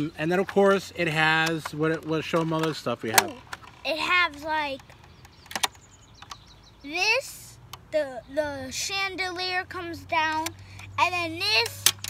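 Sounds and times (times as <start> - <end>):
sharp plastic toy clicks: 1.4 - 6.4, 10.3 - 12.0.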